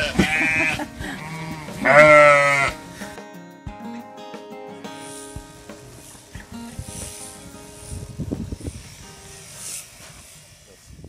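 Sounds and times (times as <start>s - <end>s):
sheep bleating: 0.0s - 2.9s
background music sustained notes: 0.0s - 10.0s.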